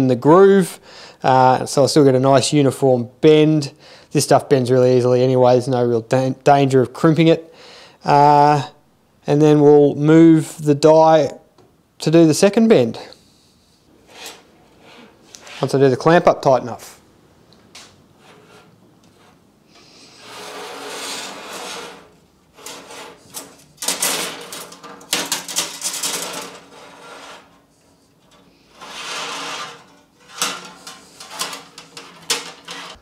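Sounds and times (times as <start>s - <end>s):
metal tube scraping: 14.0s - 15.9s, 18.1s - 33.0s.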